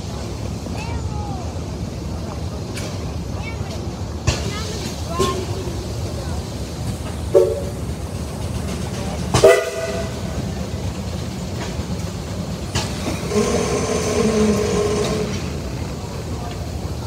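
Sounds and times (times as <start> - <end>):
steam engine low rumble: 0.0 - 17.0
steam whistle toots: 7.4 - 7.8, 9.4 - 10.2, 13.2 - 15.5.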